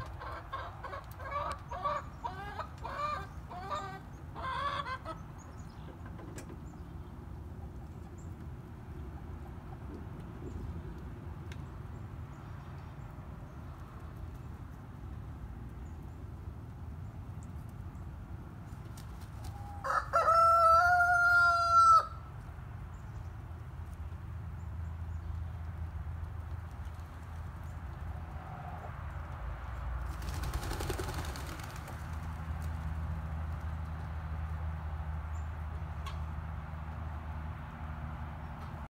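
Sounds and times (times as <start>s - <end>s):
rooster crowing: 19.5s - 22.3s.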